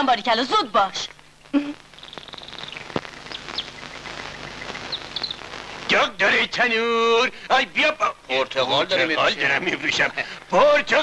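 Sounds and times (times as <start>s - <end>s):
old film soundtrack hiss: 0.0s - 11.0s
small birds chirping: 1.0s - 5.9s.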